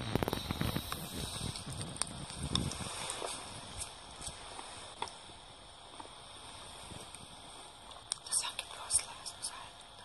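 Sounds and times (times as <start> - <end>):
people whispering: 8.2 - 10.0.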